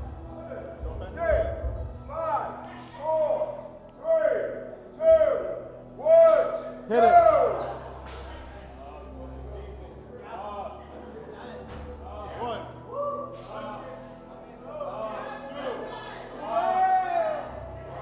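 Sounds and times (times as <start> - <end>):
brief hiss: 8.1 - 9.0.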